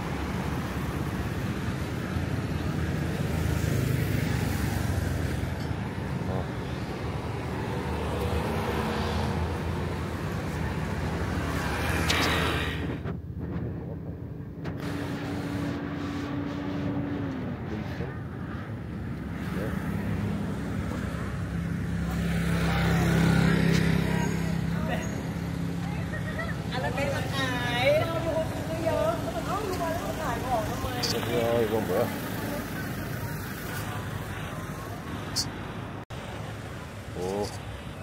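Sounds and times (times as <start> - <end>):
vehicle engines passing: 0.0 - 38.0
people's voices: 10.0 - 38.0.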